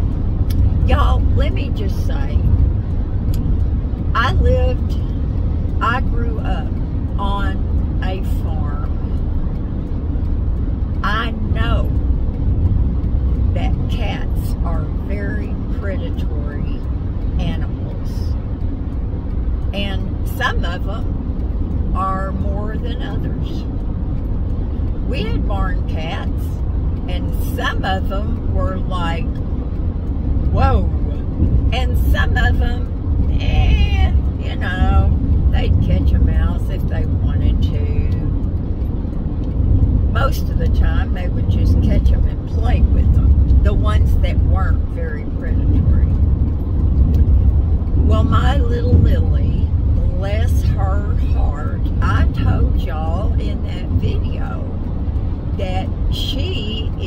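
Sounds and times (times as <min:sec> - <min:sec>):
car road and engine rumble: 0:00.0 - 0:57.0
woman talking: 0:00.8 - 0:02.5, 0:04.1 - 0:05.2, 0:05.8 - 0:09.0, 0:11.0 - 0:12.0, 0:13.4 - 0:18.4, 0:19.7 - 0:21.1, 0:21.9 - 0:23.7, 0:25.0 - 0:29.4, 0:30.5 - 0:38.4, 0:40.1 - 0:46.2, 0:48.0 - 0:54.8, 0:55.6 - 0:57.0.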